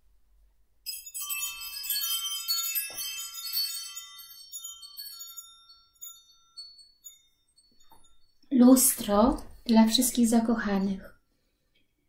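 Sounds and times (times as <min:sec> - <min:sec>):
chimes ringing: 0:00.9 - 0:10.2.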